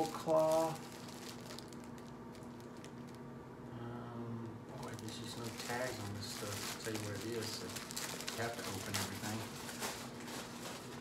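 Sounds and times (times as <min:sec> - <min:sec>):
plastic package crinkling: 0:00.0 - 0:03.3, 0:04.8 - 0:11.0.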